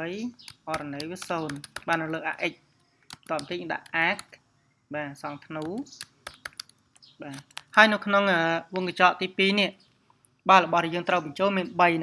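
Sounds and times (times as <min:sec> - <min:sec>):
person speaking: 0:00.0 - 0:09.8, 0:10.4 - 0:12.0
computer keyboard typing: 0:00.4 - 0:02.4, 0:03.0 - 0:04.4, 0:05.4 - 0:07.8.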